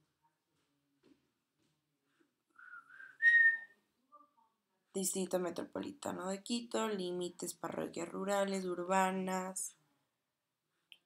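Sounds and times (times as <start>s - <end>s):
person whistling: 2.6s - 3.7s.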